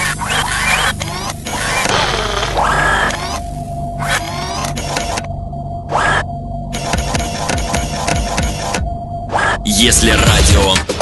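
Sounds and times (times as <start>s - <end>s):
low drone: 0.0s - 10.6s.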